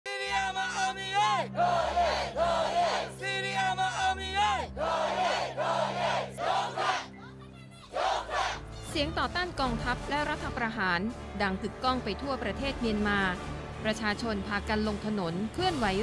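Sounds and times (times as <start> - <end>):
crowd chanting slogans: 0.2 - 7.1, 7.9 - 8.6.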